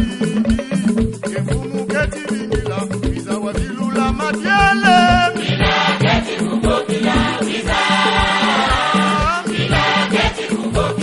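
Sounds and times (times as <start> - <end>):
steady drum beat: 0.0 - 11.0
choir singing: 5.3 - 11.0.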